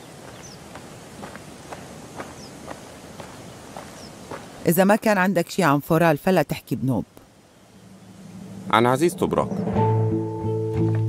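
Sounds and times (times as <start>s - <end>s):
man's footsteps in shoes: 0.0s - 4.6s
faint outdoor hiss: 0.0s - 11.0s.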